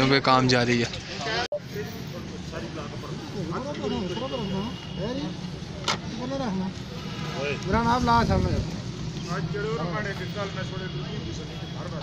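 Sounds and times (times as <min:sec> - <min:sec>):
people talking indistinctly: 0:00.0 - 0:12.0
road traffic hum: 0:00.0 - 0:12.0.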